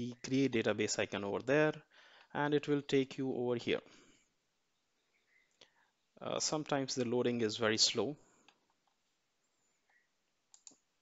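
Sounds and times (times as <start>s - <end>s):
faint computer mouse clicks: 9.9s - 10.8s.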